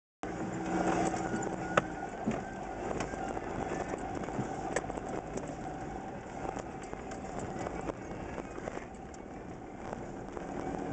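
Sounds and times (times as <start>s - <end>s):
vehicle engine and tyre noise: 0.2s - 10.9s.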